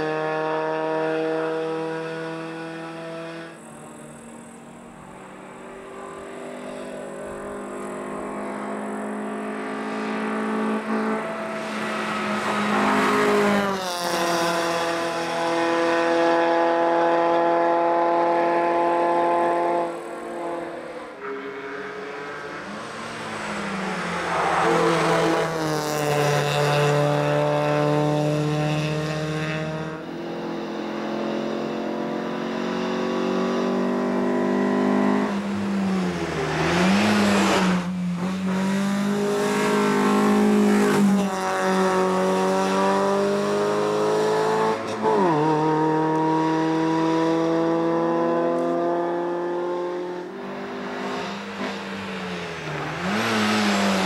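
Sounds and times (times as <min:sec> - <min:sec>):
race car engine revving: 0:00.0 - 0:54.0
race car passing by: 0:00.0 - 0:54.0.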